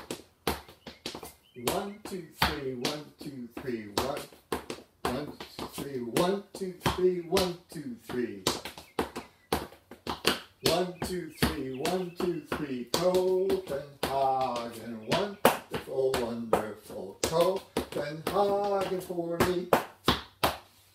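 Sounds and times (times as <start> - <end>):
hard shoes tapping on tile floor: 0.0 - 20.8
man singing: 1.6 - 4.4, 5.0 - 8.6, 10.6 - 19.8.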